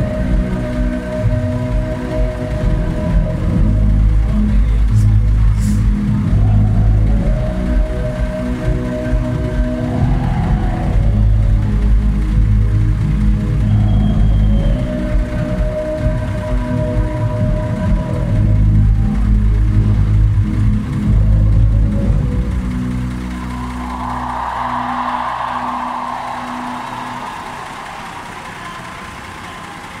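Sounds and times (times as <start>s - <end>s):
hazy noise: 0.0s - 30.0s
loud live concert music: 0.0s - 30.0s.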